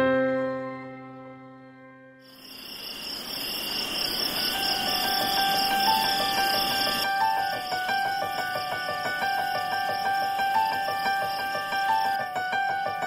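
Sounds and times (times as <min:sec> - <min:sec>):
crickets chirring: 0:02.2 - 0:13.0.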